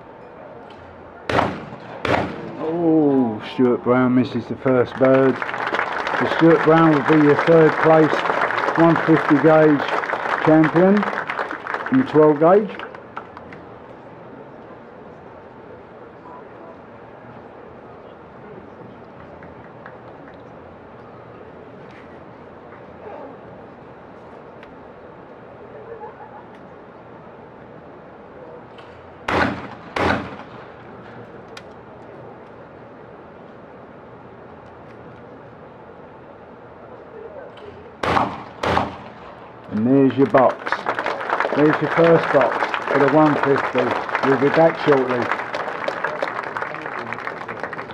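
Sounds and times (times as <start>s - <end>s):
shotgun shots: 1.3s - 2.6s, 29.3s - 30.7s, 38.0s - 39.3s.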